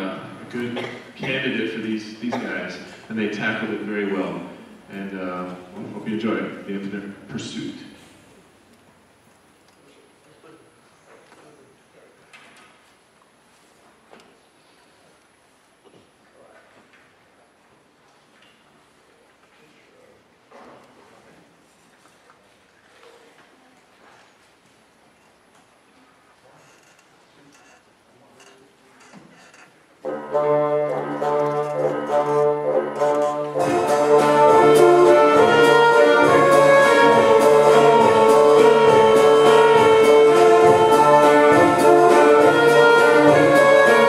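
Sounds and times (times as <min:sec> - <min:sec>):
brass woodwind and string ensemble: 0:30.1 - 0:44.0.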